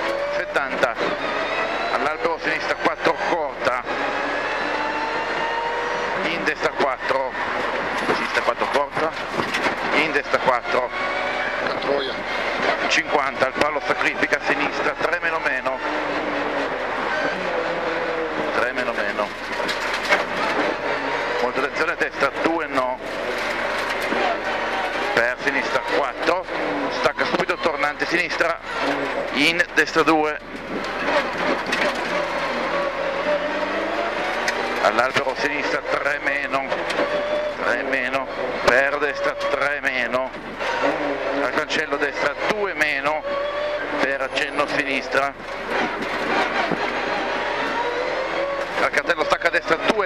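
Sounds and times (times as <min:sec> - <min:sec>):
car engine from inside cabin: 0:00.0 - 0:50.0
road and tyre noise: 0:00.0 - 0:50.0.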